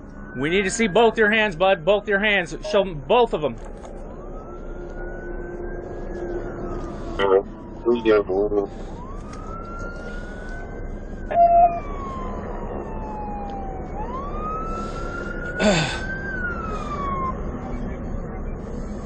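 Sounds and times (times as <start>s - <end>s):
police siren wailing: 0.0s - 19.0s.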